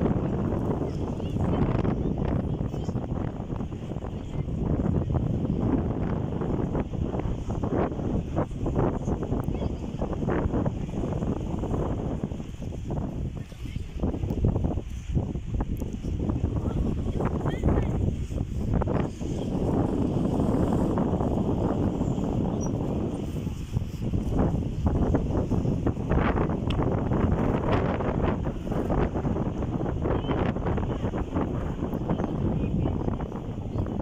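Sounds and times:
wind on microphone: 0.0 - 34.0.

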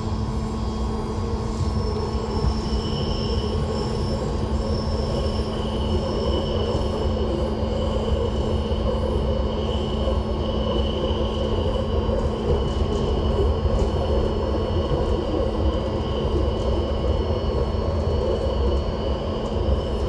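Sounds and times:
constant hum: 0.0 - 20.0
train wheels rumbling on rail: 0.0 - 20.0.

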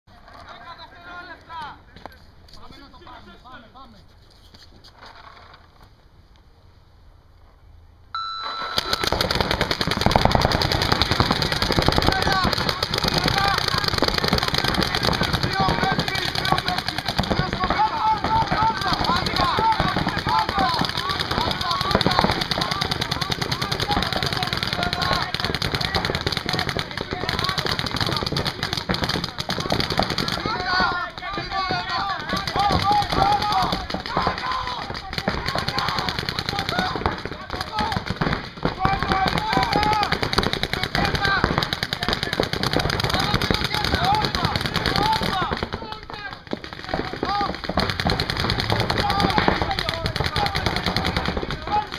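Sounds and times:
paintball markers firing: 8.8 - 51.9
players shouting: 10.1 - 51.9.

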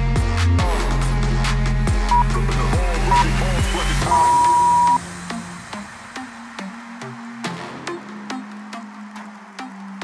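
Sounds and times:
electronic workout music: 0.0 - 10.0
interval timer beeps: 4.1 - 5.0.

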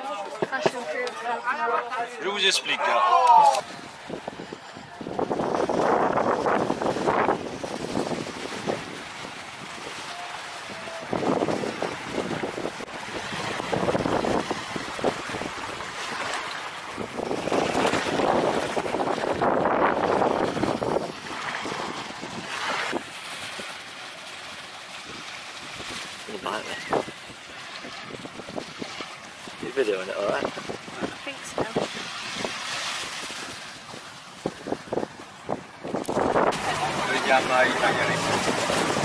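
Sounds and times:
small waves washing onto sand: 0.0 - 39.0
wind on microphone: 3.5 - 23.8, 25.0 - 39.0.

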